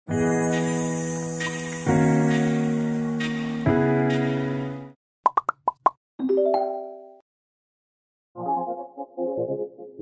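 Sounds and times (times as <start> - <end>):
cartoon pops: 5.2 - 6.0.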